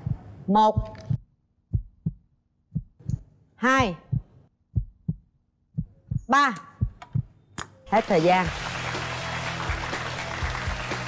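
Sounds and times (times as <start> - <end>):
heartbeat thumps: 0.0 - 7.4.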